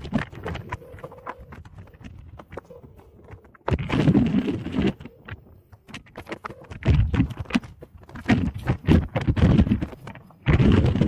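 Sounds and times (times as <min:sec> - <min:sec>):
wheels clicking on rough dirt: 0:00.0 - 0:11.0.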